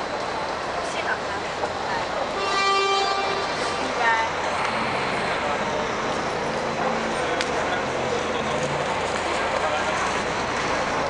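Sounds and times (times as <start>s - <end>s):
passing traffic: 0.0s - 11.0s.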